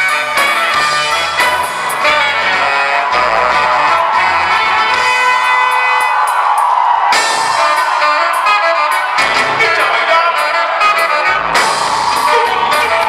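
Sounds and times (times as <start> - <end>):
drums and bass: 0.0 - 13.0
horn section playing chords: 0.0 - 13.0.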